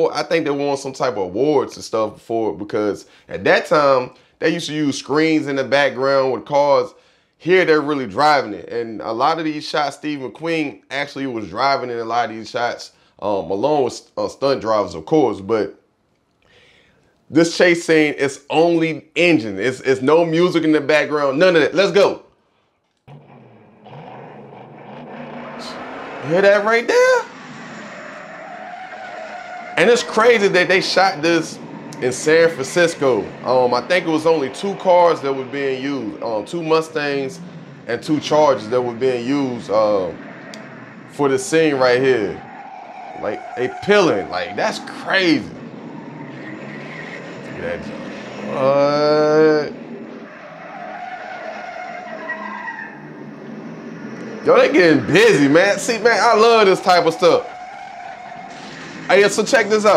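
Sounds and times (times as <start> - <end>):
tires skidding: 0.0 - 15.0, 23.1 - 59.9
faint wavering squeal tones: 23.1 - 48.8, 50.0 - 58.8
car engine running: 23.1 - 50.8, 51.4 - 59.9.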